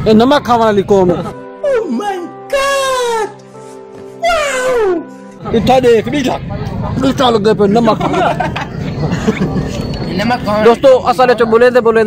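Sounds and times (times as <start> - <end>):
background music with held notes: 0.0 - 10.8.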